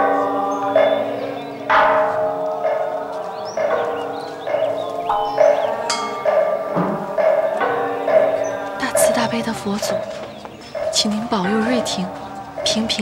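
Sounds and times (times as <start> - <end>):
struck bell percussion: 0.0 - 13.0.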